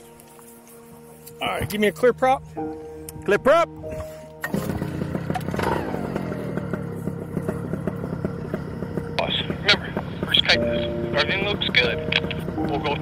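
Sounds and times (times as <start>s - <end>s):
paramotor engine running: 4.0s - 13.0s.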